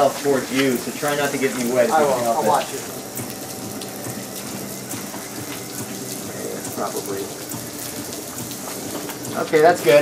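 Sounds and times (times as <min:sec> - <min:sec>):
hose water spraying on car: 0:00.0 - 0:10.0.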